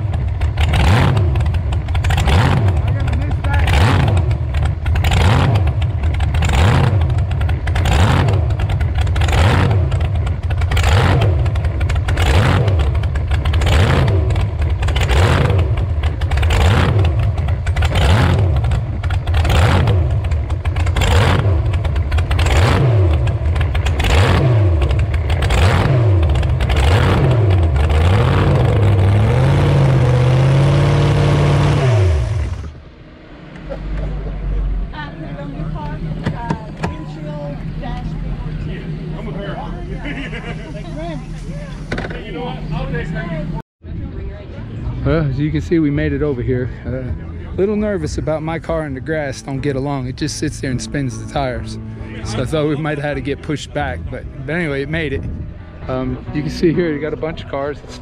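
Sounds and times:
car engine revving: 0.0 - 43.6, 44.6 - 58.0
engine shutting off: 0.0 - 43.6, 44.8 - 58.0.

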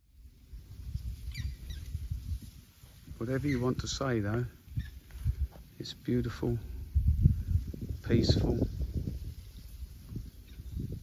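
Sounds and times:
wind buffeting microphone: 0.1 - 11.0
high bird chirps: 0.5 - 2.0, 4.7 - 5.0.

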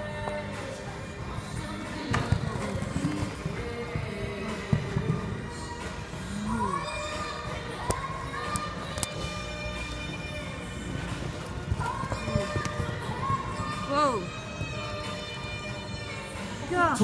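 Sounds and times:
music over speakers: 0.0 - 17.0
horse hooves thudding: 1.2 - 6.0, 7.7 - 16.3.

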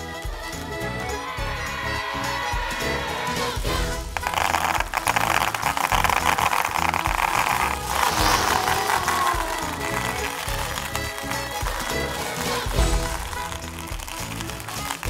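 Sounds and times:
background music: 0.0 - 15.0
plastic beads pouring into a tray: 4.2 - 15.0.

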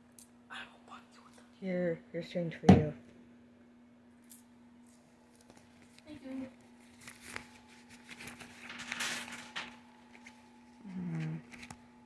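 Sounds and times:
coins clinking: 8.6 - 9.8
person humming: 10.8 - 11.5.

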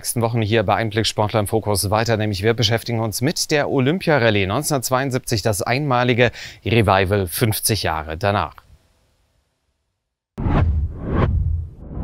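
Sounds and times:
low rumble: 10.4 - 12.0
whooshes: 10.4 - 12.0.

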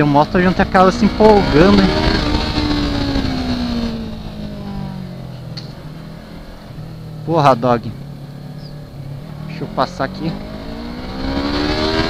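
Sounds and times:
motorcycle engine revs falling: 0.0 - 7.4, 8.0 - 12.0.

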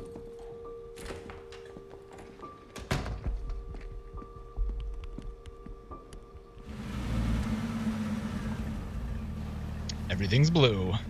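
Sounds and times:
car engine running: 6.6 - 11.0
low hum: 6.6 - 11.0.

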